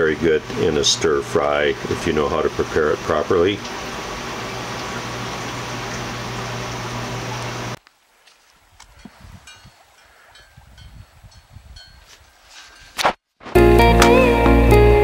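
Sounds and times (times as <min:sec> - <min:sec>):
running water and pump hum: 0:00.0 - 0:12.7.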